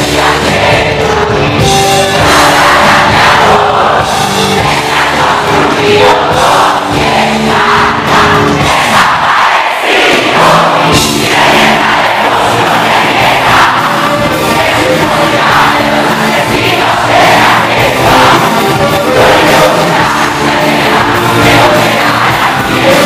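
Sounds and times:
live rock band playing: 0:00.0 - 0:09.4, 0:10.2 - 0:23.0
crowd shouting and singing along: 0:00.0 - 0:23.0
lead vocal singing: 0:00.0 - 0:23.0.

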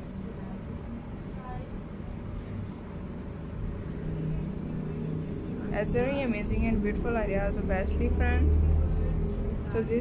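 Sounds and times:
faint hum: 0:00.0 - 0:10.0
low rumbling background noise: 0:00.0 - 0:10.0.

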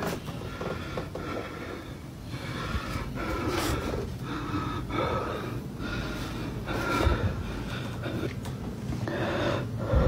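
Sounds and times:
faint steady hum: 0:00.0 - 0:10.0
person breathing heavily: 0:00.0 - 0:10.0.

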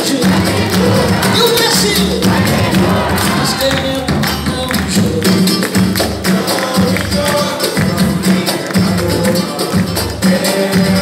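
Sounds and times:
drums: 0:00.0 - 0:11.0
hand percussion: 0:00.0 - 0:11.0
samba band playing: 0:00.0 - 0:11.0.

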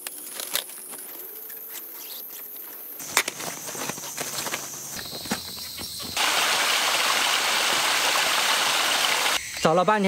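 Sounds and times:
gear rustling and knocking: 0:03.0 - 0:06.2
stream running over rocks: 0:05.0 - 0:09.4.

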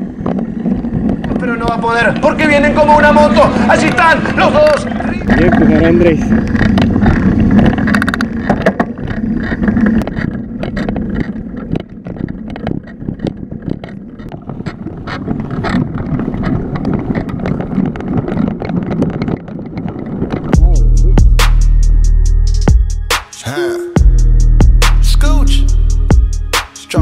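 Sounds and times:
motorcycle engine running: 0:00.0 - 0:18.6, 0:19.4 - 0:23.2, 0:24.0 - 0:27.0
bicycle road rumble: 0:00.0 - 0:23.1
wind buffeting microphone: 0:00.0 - 0:23.1
indistinct voices: 0:23.2 - 0:27.0.

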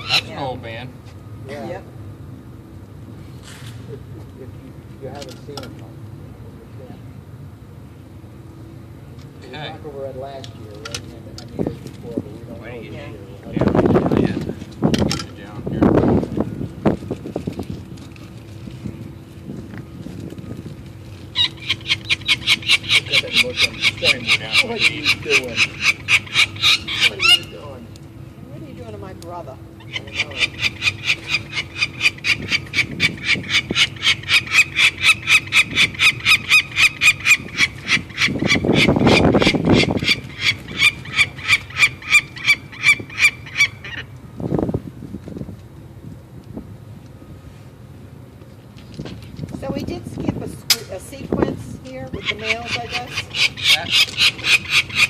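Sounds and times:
falcon chick calling: 0:00.0 - 0:00.4, 0:21.3 - 0:27.7, 0:29.8 - 0:44.1, 0:51.9 - 0:55.0.

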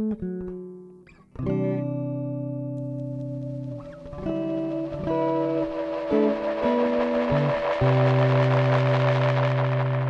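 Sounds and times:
echo unit hiss: 0:02.8 - 0:10.0
sustained electric guitar note: 0:03.5 - 0:10.0.

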